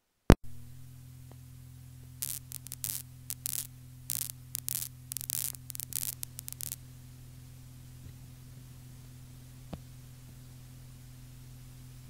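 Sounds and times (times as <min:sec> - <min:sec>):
crackling static: 0:00.3 - 0:07.0
cassette tape hum: 0:00.3 - 0:12.0.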